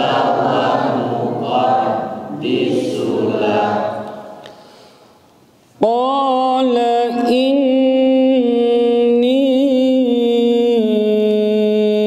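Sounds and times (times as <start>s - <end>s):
men chanting together: 0.0s - 4.3s.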